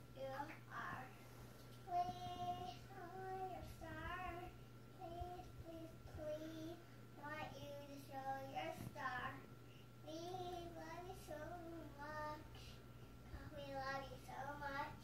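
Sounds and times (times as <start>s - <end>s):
girl singing: 0.2s - 1.2s, 1.8s - 15.0s.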